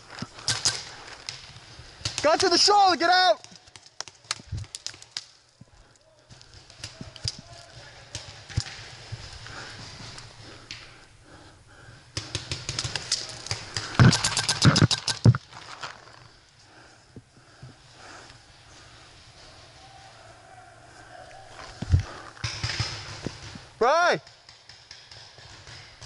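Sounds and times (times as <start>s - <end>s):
rapid paintball marker shots: 0.4s - 2.7s, 3.4s - 5.4s, 6.3s - 10.1s, 12.1s - 15.5s, 22.0s - 26.0s
twigs cracking: 3.4s - 10.9s, 12.2s - 16.4s.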